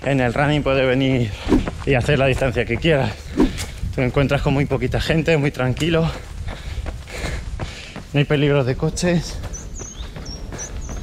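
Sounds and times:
wind rumble on microphone: 0.0s - 7.8s
footfalls on paved path: 0.0s - 11.0s
man breathing: 1.2s - 1.8s, 6.1s - 8.1s, 10.4s - 11.0s.

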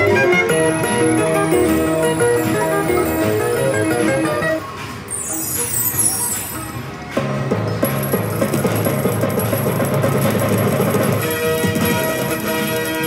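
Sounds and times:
slot machine win jingle: 0.0s - 6.7s, 7.9s - 13.0s
falling high chimes: 5.1s - 6.8s.

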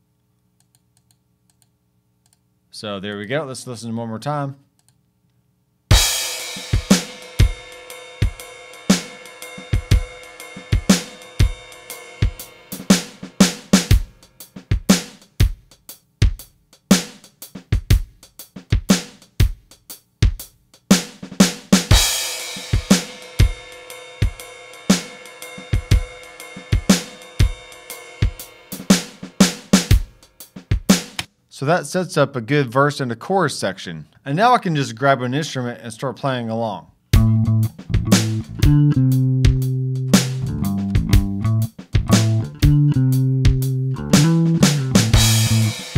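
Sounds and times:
crash cymbal: 5.9s - 14.5s, 21.9s - 30.6s
programmed drum groove: 5.9s - 31.3s, 37.1s - 45.9s.

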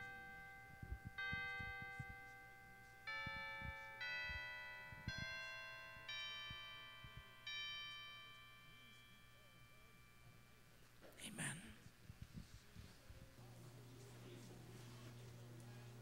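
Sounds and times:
chime-like keyboard notes: 0.0s - 10.9s.

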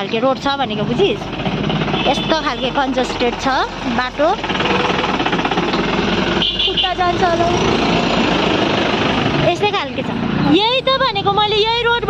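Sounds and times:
jeep passing by: 0.0s - 12.0s
road and wind noise: 0.0s - 12.0s
scooter engine running: 0.0s - 12.0s.

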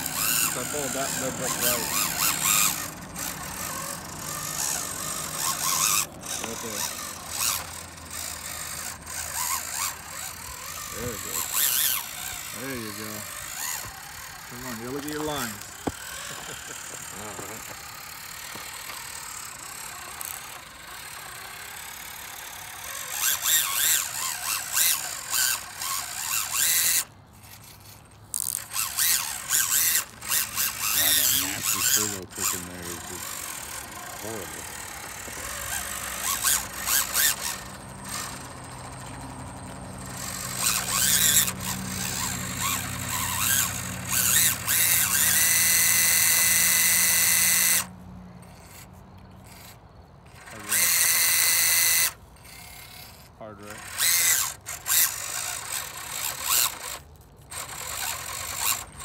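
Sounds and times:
small electric motors whining: 0.0s - 59.0s.

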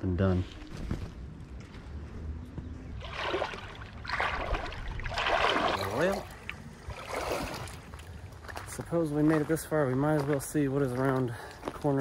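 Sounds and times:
feet splashing through creek water: 2.9s - 12.0s.

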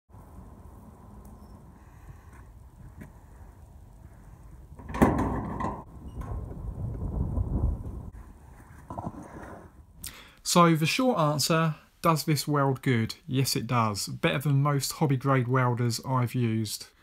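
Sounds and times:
metal door rattling and scraping: 4.7s - 7.2s
metal bolt latch clanking: 4.8s - 6.4s.

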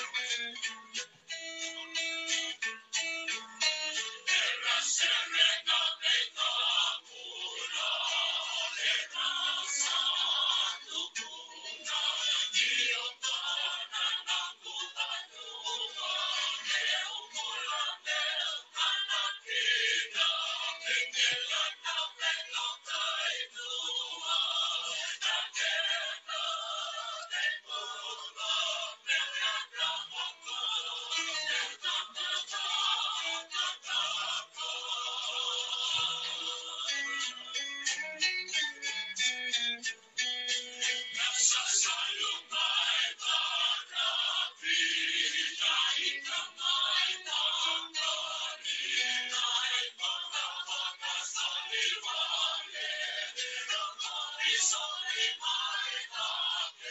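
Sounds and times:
band-limited song with singing: 4.2s - 37.6s, 40.8s - 56.9s.

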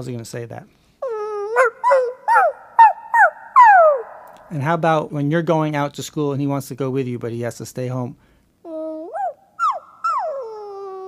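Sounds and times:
puppy whining and whimpering: 1.0s - 4.1s, 8.7s - 11.0s.

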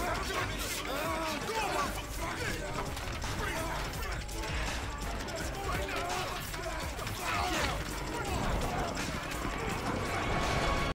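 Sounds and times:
men shouting and grunting: 0.0s - 10.9s.

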